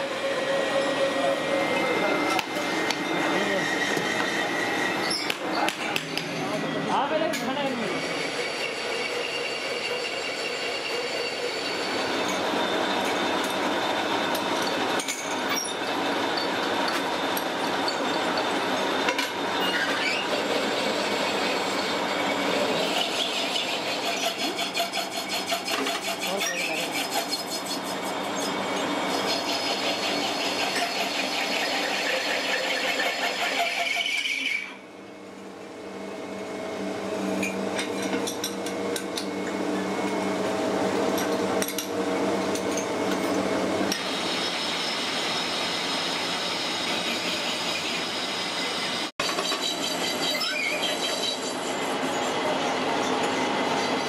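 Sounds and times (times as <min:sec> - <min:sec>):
lathe cutting tool scraping: 0:00.0 - 0:34.8, 0:40.9 - 0:54.0
lathe machine running: 0:00.0 - 0:54.0.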